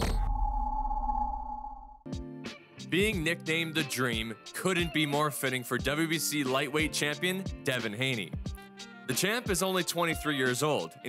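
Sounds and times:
crash: 0:00.0 - 0:01.4.

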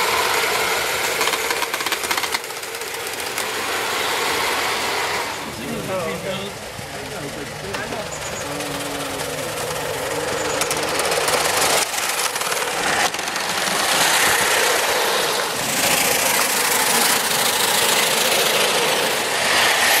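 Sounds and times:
steam exhaust hissing: 0:00.0 - 0:20.0
wheels rattling on rails: 0:00.0 - 0:20.0.

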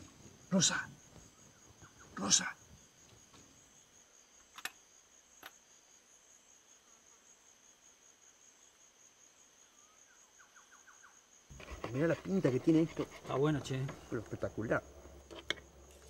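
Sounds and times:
crickets chirring: 0:00.0 - 0:16.0.

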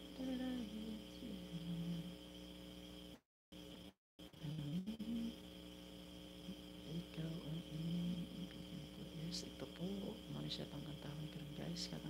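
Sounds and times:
electrical hum with high whine: 0:00.0 - 0:12.0
man humming: 0:04.4 - 0:05.4.

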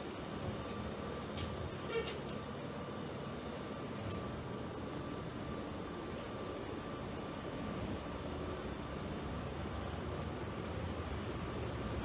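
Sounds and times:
bus interior hum: 0:00.0 - 0:12.0.

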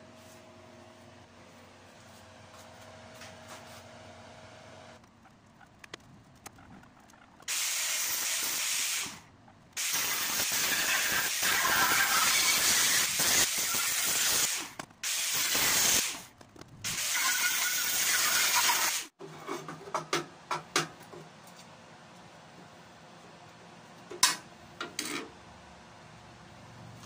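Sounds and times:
power tool hissing on metal: 0:07.5 - 0:09.2, 0:09.8 - 0:16.2, 0:16.9 - 0:19.1.

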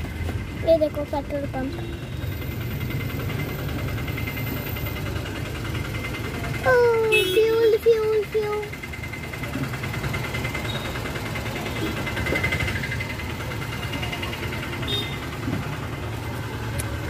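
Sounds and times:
car engine idling: 0:00.0 - 0:17.0.

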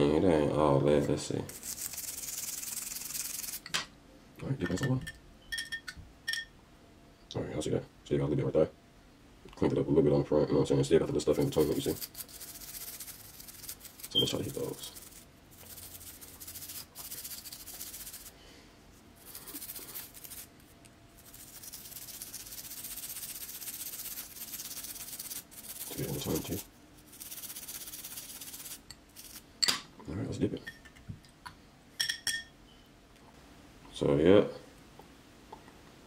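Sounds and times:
toothbrush scrubbing: 0:01.5 - 0:03.6, 0:11.3 - 0:18.3, 0:19.2 - 0:29.4.

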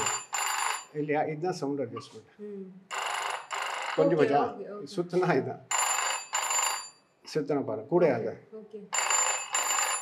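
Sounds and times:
telephone bells ringing: 0:00.0 - 0:01.0, 0:02.9 - 0:04.4, 0:05.7 - 0:07.1, 0:08.9 - 0:10.0.

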